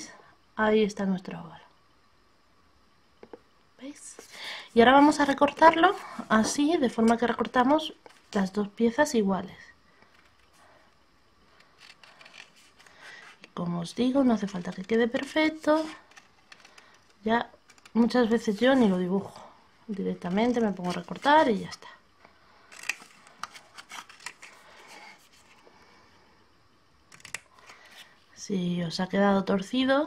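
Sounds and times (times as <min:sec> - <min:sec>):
paper handling: 0:19.9 - 0:21.8, 0:22.7 - 0:25.6.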